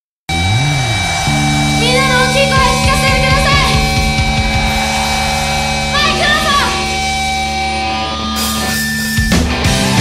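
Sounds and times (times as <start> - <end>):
live rock band: 0.3 - 10.0
drum hits: 0.7 - 9.4.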